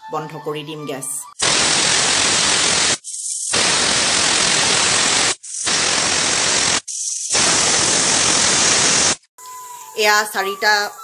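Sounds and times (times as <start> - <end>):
pressure cooker whistle hissing: 1.3 - 10.1.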